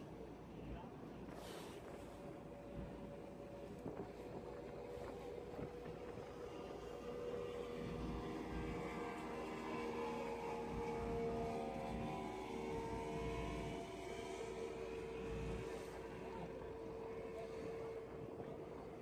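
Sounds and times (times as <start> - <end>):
boat engine droning: 0.0 - 19.0
wind buffeting microphone: 0.1 - 19.0.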